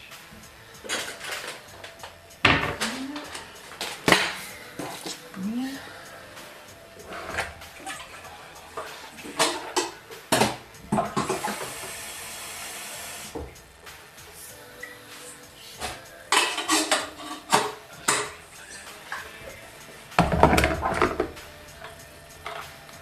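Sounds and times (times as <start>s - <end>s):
steady hiss: 0.0s - 23.0s
crockery and cutlery clinking: 0.8s - 5.3s, 15.8s - 19.6s.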